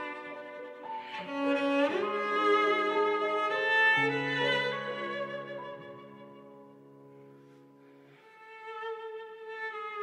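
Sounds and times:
cello playing slow melody: 0.0s - 10.0s.

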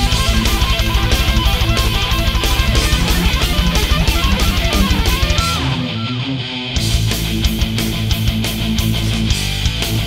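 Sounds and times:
distorted electric guitars: 0.0s - 10.0s
metal band playing: 0.0s - 10.0s.

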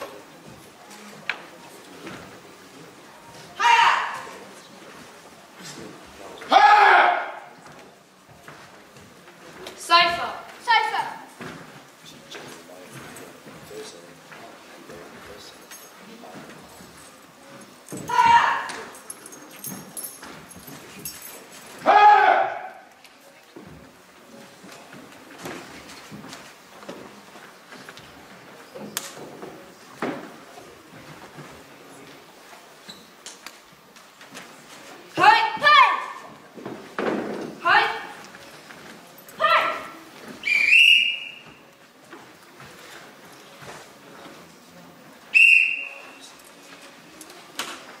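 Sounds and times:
karate shouts: 3.6s - 4.4s, 6.5s - 7.6s, 18.0s - 18.9s, 21.8s - 22.8s, 35.2s - 36.2s, 39.4s - 39.9s
taps and rustles of movement: 22.9s - 39.4s.

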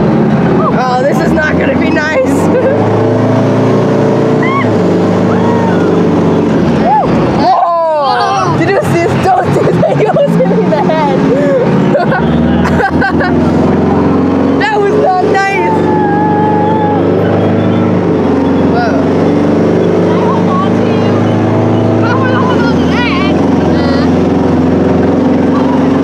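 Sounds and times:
tank engine running: 0.0s - 26.0s
voices: 0.5s - 3.1s, 4.4s - 26.0s.

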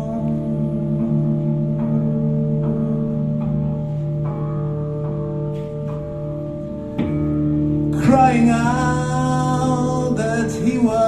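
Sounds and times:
electric guitar ringing chords: 0.0s - 11.0s.

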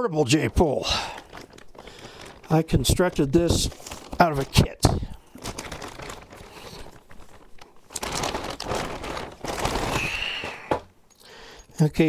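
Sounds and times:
plastic bag crinkling: 0.2s - 11.9s.

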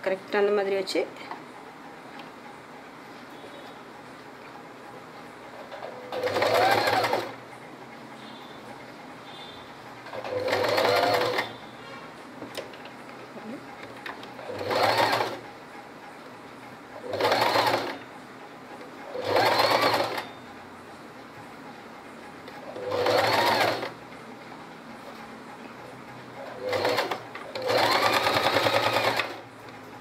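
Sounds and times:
sewing machine stitching: 5.7s - 7.4s, 10.1s - 11.6s, 14.4s - 15.4s, 17.0s - 18.0s, 19.0s - 20.4s, 22.6s - 24.0s, 26.4s - 29.4s.

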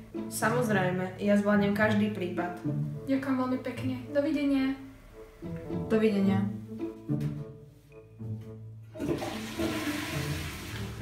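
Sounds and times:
toilet flushing water rush: 9.0s - 11.0s.

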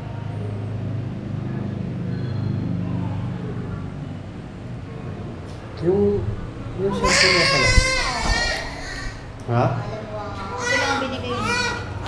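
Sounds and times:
newborn baby crying: 6.8s - 9.3s, 10.4s - 12.0s.

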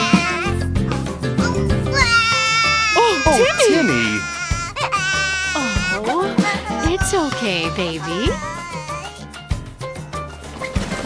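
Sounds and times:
cartoon voice wailing: 1.4s - 9.0s.

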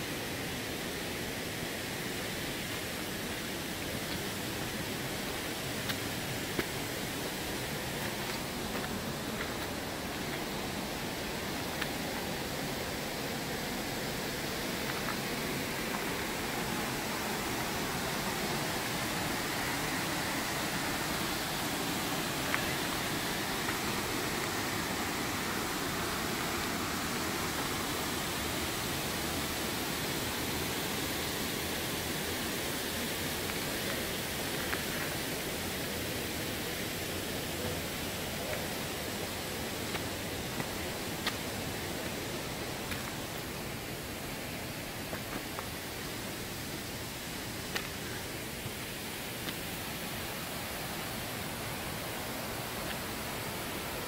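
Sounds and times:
waterfall rushing: 0.1s - 54.0s.

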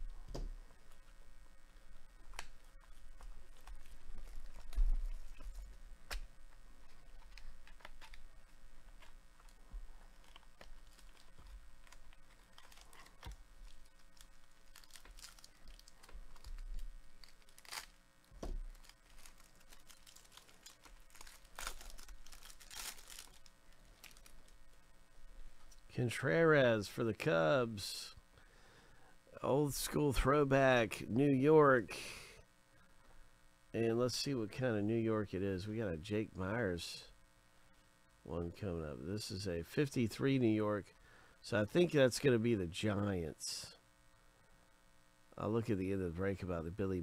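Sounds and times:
plastic sleeve crinkling: 2.3s - 24.8s.

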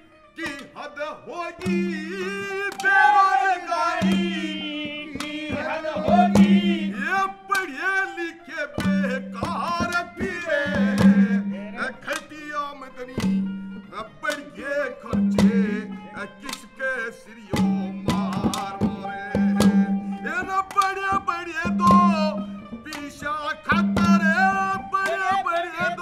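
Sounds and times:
folk song with accompaniment: 0.0s - 26.0s
hand drum strokes: 3.8s - 7.0s, 8.8s - 11.4s, 15.2s - 15.9s, 18.0s - 23.1s, 23.7s - 26.0s.

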